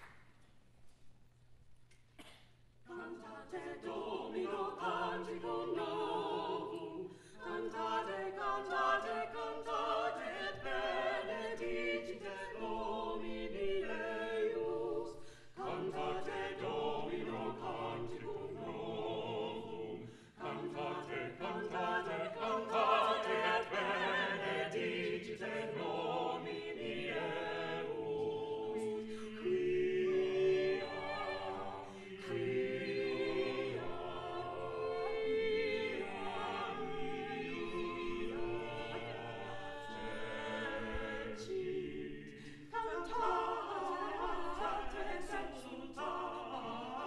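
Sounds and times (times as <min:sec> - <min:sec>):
a cappella group singing: 0:02.9 - 0:47.0.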